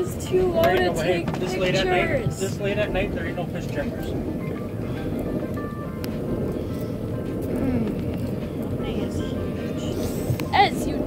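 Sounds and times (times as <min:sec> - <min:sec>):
muffled voices: 0:00.0 - 0:05.4, 0:07.2 - 0:11.0
boat engine rumbling: 0:00.0 - 0:11.0
faint music: 0:00.0 - 0:11.0.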